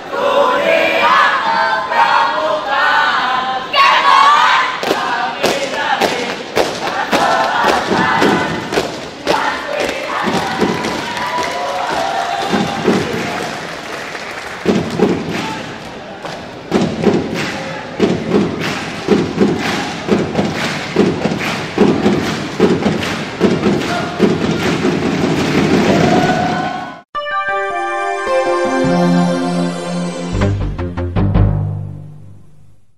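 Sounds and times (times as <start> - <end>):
group shouting a chant: 0.0 - 13.4, 23.8 - 24.2, 25.8 - 27.0
crowd noise in a hall: 0.0 - 30.4.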